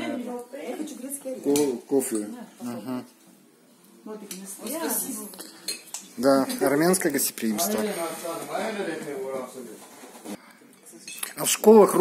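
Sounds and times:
plates and cutlery clinking: 4.3 - 7.1, 9.8 - 11.6.

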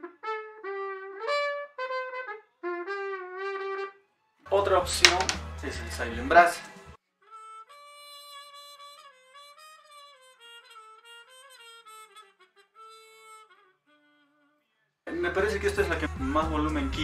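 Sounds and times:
muted trumpet melody: 0.0 - 6.4, 7.2 - 16.6.

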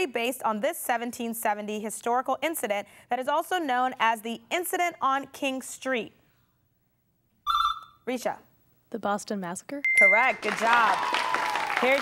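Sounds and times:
game show buzzer tone: 7.5 - 8.0.

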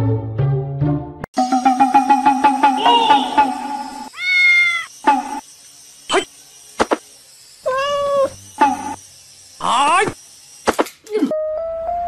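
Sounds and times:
cat meowing: 4.1 - 4.9, 7.7 - 8.3.

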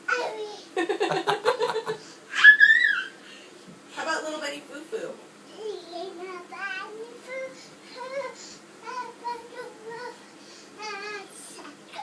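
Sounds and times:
toddler singing wordless notes: 5.5 - 12.0.

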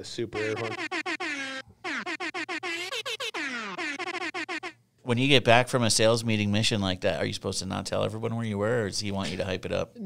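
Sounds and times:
stuttering air horn blasts: 0.4 - 4.8.

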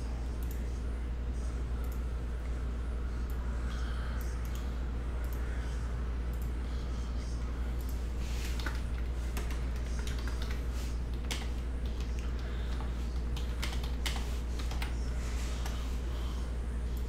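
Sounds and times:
steady low hum: 0.0 - 17.0
keyboard typing clicks: 7.8 - 15.0.

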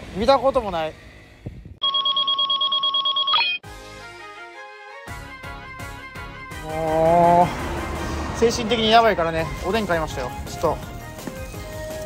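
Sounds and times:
pulsing electronic alarm tone: 1.8 - 3.6.

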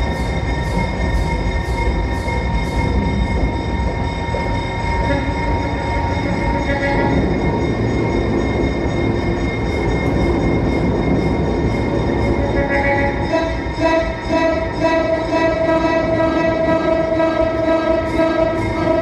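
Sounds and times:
held steady tones: 0.0 - 19.0
train rumble: 0.0 - 19.0.

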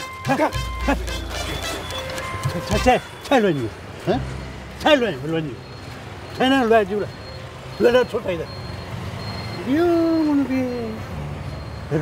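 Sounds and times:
men speaking: 0.0 - 8.7, 9.6 - 11.2
low street noise hum: 0.0 - 12.0.

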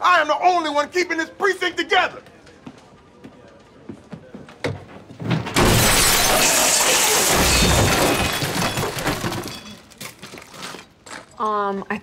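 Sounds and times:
glass shattering and objects falling: 5.3 - 10.8
clinks of settling debris: 5.4 - 11.4.

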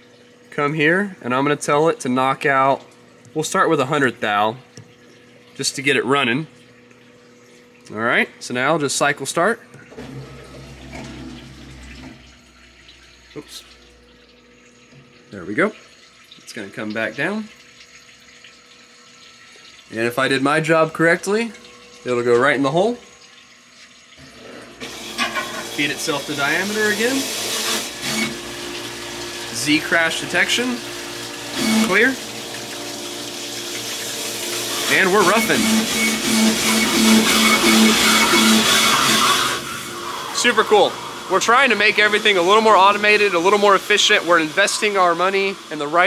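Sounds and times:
flowing coolant: 0.0 - 46.0
honing machine running: 34.2 - 42.5.

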